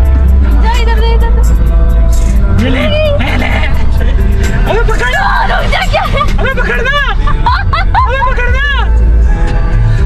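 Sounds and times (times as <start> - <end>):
car rumbling: 0.0 - 10.0
music in car: 0.0 - 10.0.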